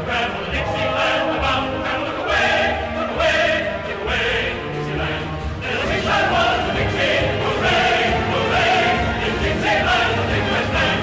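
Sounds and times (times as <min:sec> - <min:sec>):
choir singing: 0:00.0 - 0:11.0
musical accompaniment: 0:00.0 - 0:11.0.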